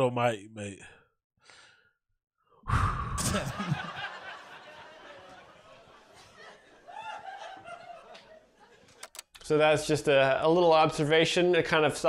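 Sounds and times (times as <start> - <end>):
man sighing: 2.6 - 3.7.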